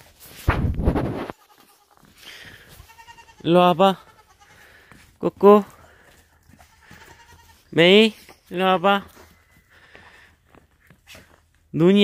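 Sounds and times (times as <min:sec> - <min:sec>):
young goat bleating: 0:01.2 - 0:04.8, 0:06.5 - 0:07.8.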